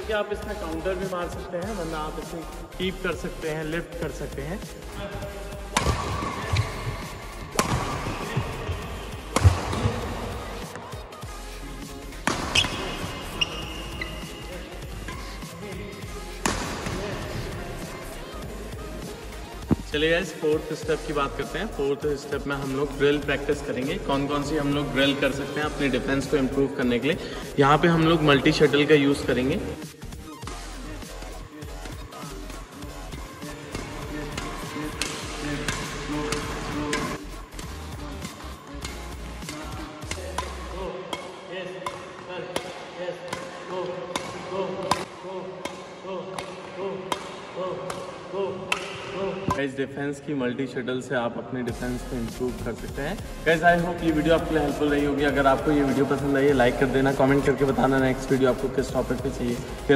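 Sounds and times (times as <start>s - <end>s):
racket striking shuttlecock: 5.7s - 10.9s, 12.2s - 14.2s, 16.4s - 17.0s, 33.4s - 37.2s, 38.7s - 49.6s
shoes squeaking on court: 5.8s - 11.2s, 12.2s - 17.5s.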